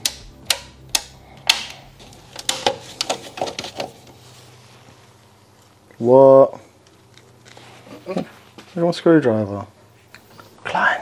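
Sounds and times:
breaker switches clicking: 0.0s - 4.0s.

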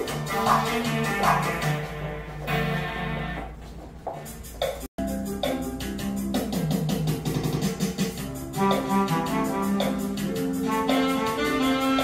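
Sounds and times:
dance music with steady beat: 0.0s - 12.0s.

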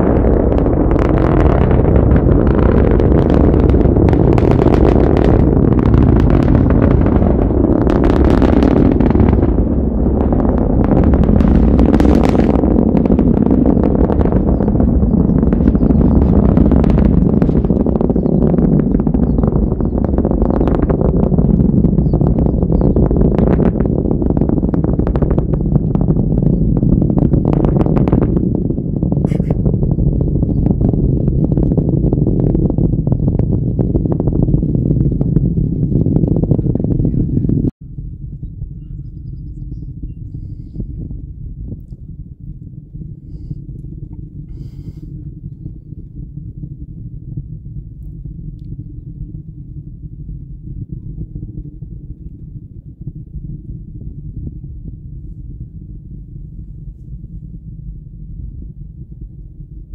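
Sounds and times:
distant rocket engine rumble: 0.0s - 59.9s.

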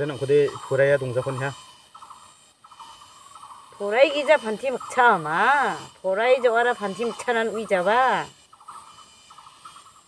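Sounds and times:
insect trilling: 0.0s - 10.0s.

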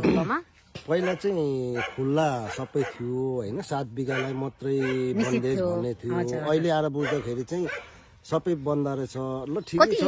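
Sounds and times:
man talking: 0.8s - 10.0s.

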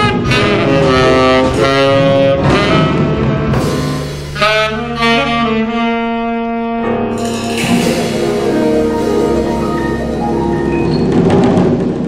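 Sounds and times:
saxophone playing: 0.0s - 10.5s.

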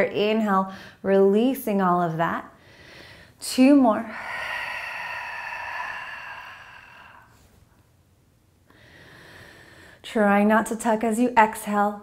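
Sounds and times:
woman exhaling through the mouth: 4.1s - 7.5s.

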